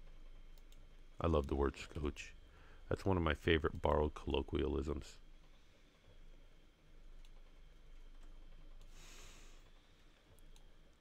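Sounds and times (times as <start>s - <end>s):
soft hiss: 0.2s - 11.0s
computer mouse clicks: 0.5s - 0.8s, 10.2s - 11.0s.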